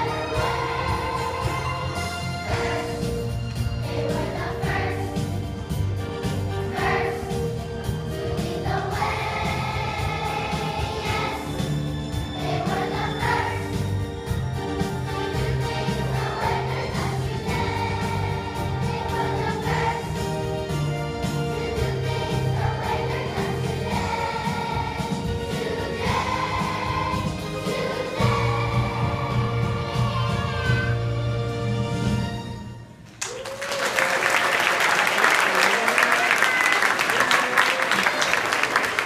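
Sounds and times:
children's choir singing: 0:00.0 - 0:31.2
musical accompaniment with beat: 0:00.0 - 0:33.0.

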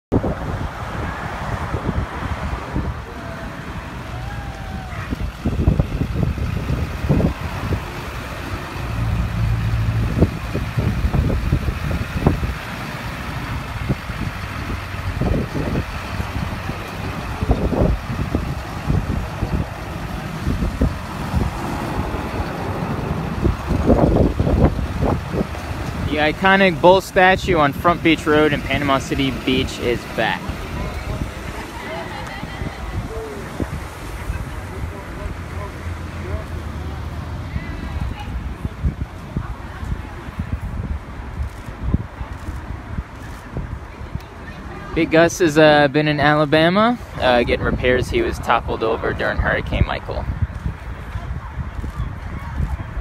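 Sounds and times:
road traffic: 0:00.1 - 0:53.0
pickup truck engine running: 0:03.4 - 0:39.0.

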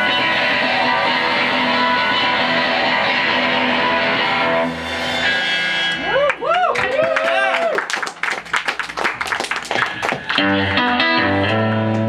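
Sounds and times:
electric guitar through amp: 0:00.0 - 0:06.3, 0:09.8 - 0:12.0.

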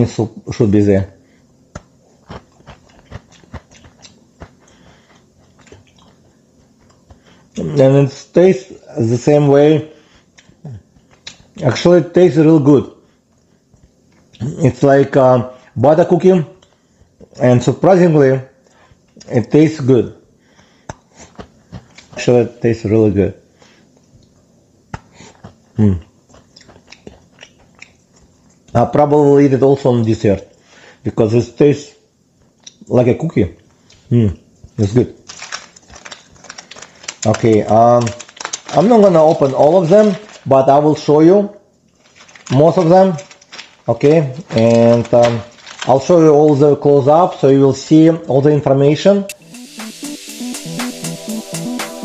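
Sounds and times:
quiet crunches of chewing: 0:01.7 - 0:07.7, 0:10.2 - 0:11.6, 0:20.8 - 0:22.3, 0:24.0 - 0:28.8.

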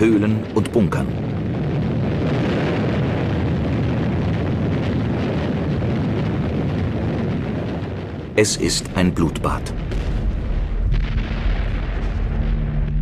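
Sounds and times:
explosions and gunfire din: 0:00.0 - 0:13.0.

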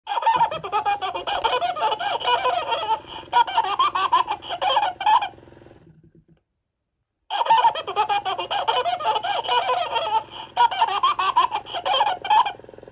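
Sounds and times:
toy cackling laugh: 0:00.1 - 0:05.4, 0:07.3 - 0:12.9
toy motor hum: 0:00.1 - 0:06.3, 0:07.3 - 0:12.9.

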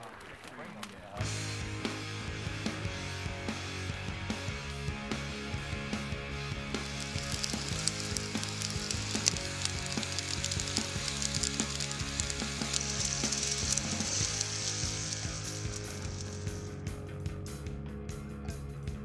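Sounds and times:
background music: 0:01.2 - 0:19.0
hot oil sizzling in frying pans: 0:06.3 - 0:16.8.

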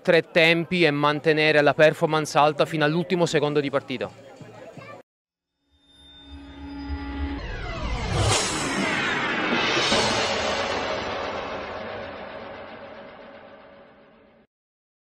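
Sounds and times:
bright hit with shimmering tail: 0:05.9 - 0:14.4
whoosh with low rumble: 0:06.0 - 0:14.4.

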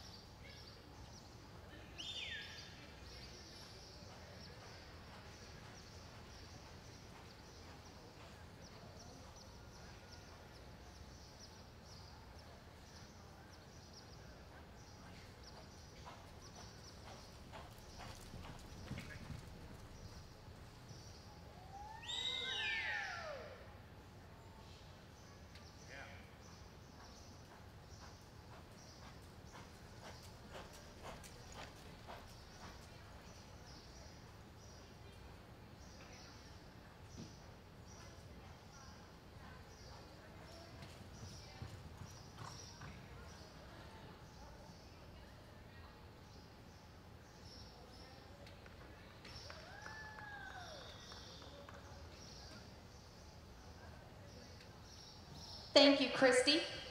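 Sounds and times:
hoofbeats on soft dirt: 0:03.1 - 0:11.6, 0:12.8 - 0:21.2, 0:26.4 - 0:34.8, 0:39.7 - 0:43.7.

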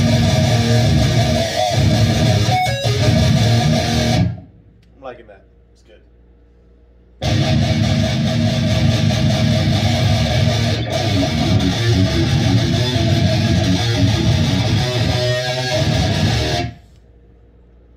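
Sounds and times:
electric guitar riffing and chugging: 0:00.0 - 0:04.5, 0:07.2 - 0:16.8.

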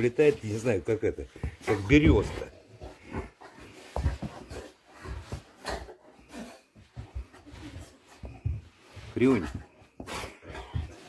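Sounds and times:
dog rubbing on carpet: 0:06.8 - 0:11.0.

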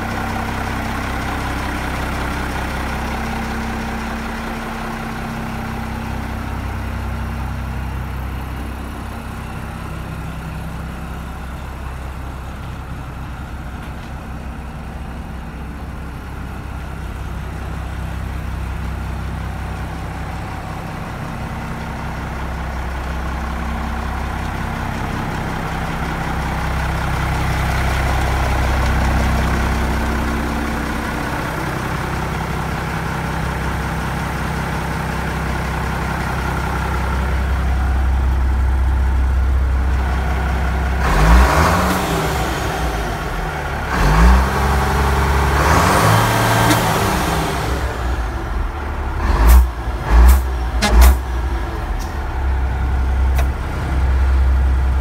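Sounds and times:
diesel truck engine idling and revving: 0:00.0 - 0:55.0.

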